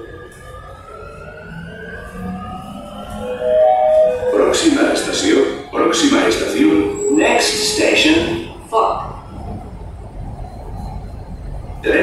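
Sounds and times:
train traction motors whining: 0.0 - 12.0.

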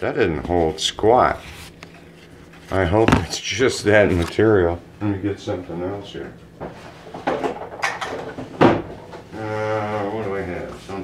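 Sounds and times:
man humming low tone: 9.3 - 10.2.

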